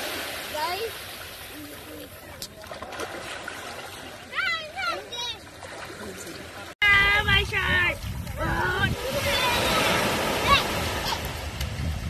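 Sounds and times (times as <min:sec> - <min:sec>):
small waves washing on beach: 0:00.0 - 0:12.0
water splashing: 0:00.0 - 0:12.0
children's voices: 0:04.1 - 0:05.7, 0:08.4 - 0:11.5.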